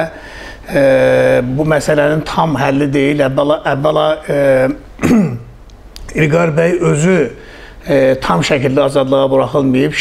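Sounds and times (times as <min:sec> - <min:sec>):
man speaking: 0:00.7 - 0:04.9, 0:06.0 - 0:10.0
man clearing his throat: 0:05.0 - 0:05.6.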